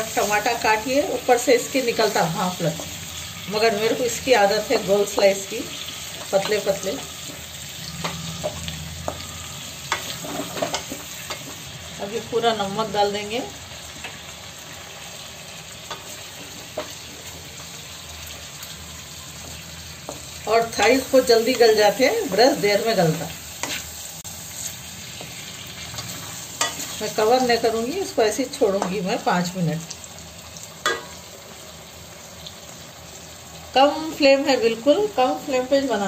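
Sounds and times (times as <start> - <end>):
chicken and tomatoes sizzling: 0.0 - 36.0.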